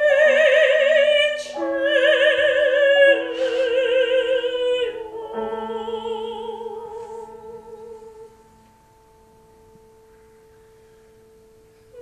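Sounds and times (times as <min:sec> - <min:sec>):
woman singing operatic note: 0:00.0 - 0:08.4.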